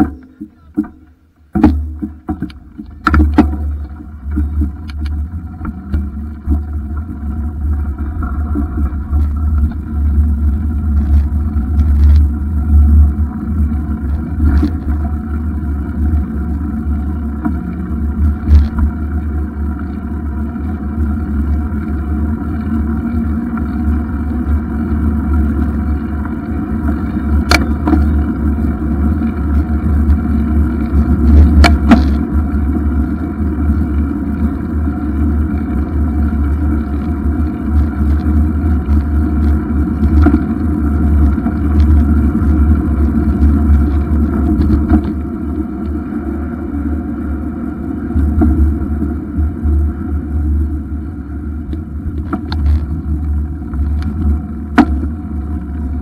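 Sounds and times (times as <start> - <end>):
bicycle knocking over bumps: 0.0 - 46.0, 51.6 - 56.0
tyres rumbling on tarmac: 0.0 - 56.0.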